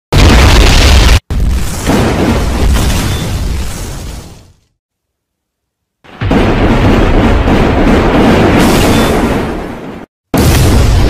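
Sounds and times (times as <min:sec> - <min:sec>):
rumbling boom: 0:10.4 - 0:11.0.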